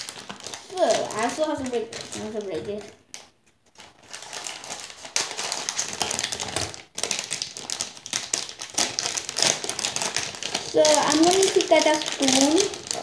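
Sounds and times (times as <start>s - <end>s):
packaging crinkling: 0.0s - 13.0s.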